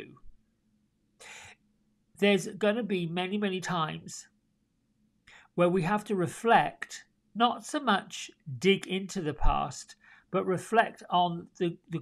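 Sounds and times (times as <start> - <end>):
man breathing in: 1.2 - 1.6, 5.3 - 5.6, 10.0 - 10.3
man speaking: 2.2 - 4.3, 5.6 - 12.0.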